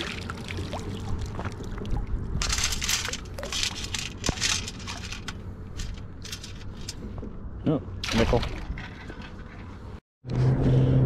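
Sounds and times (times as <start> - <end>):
pebbles rattling in metal scoop: 2.4 - 6.9.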